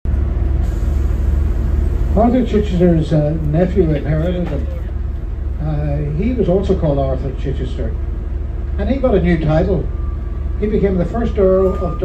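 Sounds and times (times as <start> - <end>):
bus diesel engine rumbling: 0.0 - 12.0.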